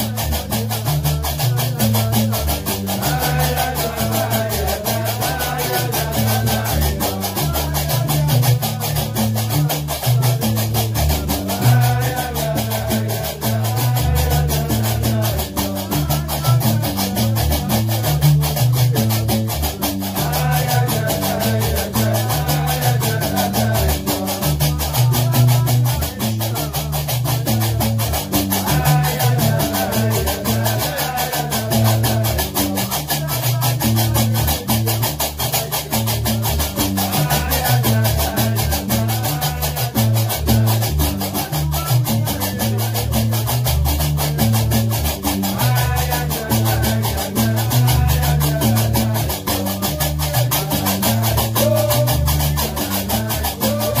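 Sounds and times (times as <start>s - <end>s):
deep plucked bass lute: 0.0s - 54.0s.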